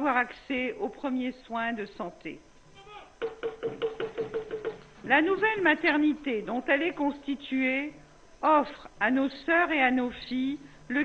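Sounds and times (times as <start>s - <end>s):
rhythmic pitched percussion strokes: 3.2s - 5.0s.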